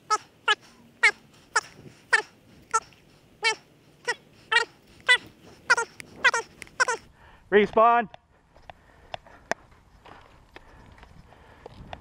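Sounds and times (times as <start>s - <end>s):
animal high-pitched calls: 0.0s - 7.1s.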